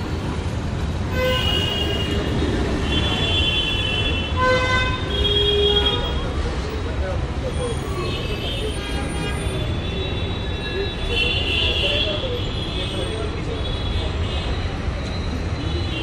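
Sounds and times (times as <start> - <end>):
road traffic rumble: 0.0 - 16.0
vehicle horn: 1.1 - 6.1
people talking: 6.0 - 10.0.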